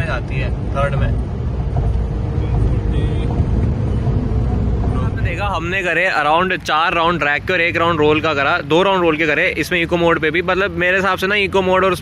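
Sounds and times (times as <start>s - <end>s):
car cabin road drone: 0.0s - 12.0s.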